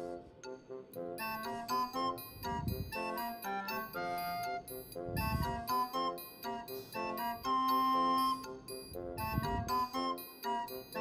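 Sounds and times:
bell-like melody music: 0:00.0 - 0:11.0.

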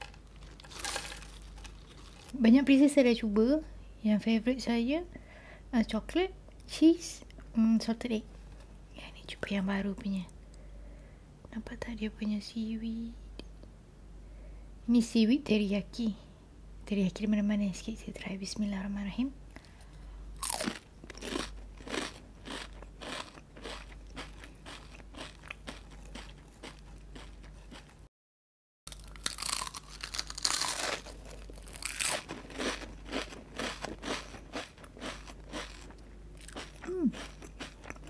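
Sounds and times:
crunching and chewing chips: 0:00.0 - 0:02.4, 0:19.6 - 0:28.0, 0:28.9 - 0:38.0.

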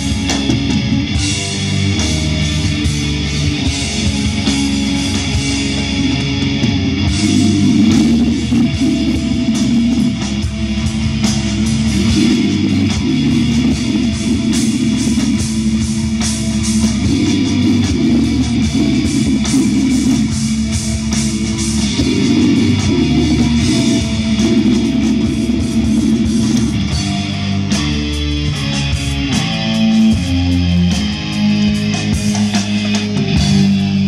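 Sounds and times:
live heavy metal band: 0:00.0 - 0:34.0.

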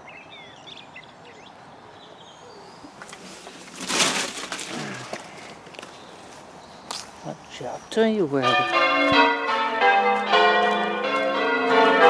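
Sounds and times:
small birds chirping: 0:00.0 - 0:03.7, 0:04.7 - 0:08.6
outdoor hush: 0:00.0 - 0:11.0.

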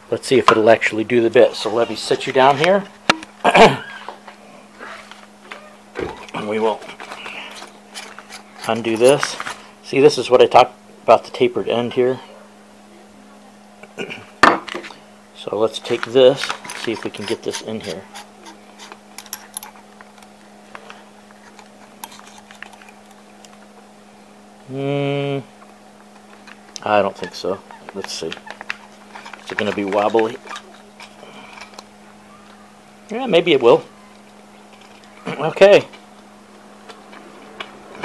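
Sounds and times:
steady low hum: 0:00.0 - 0:38.0.

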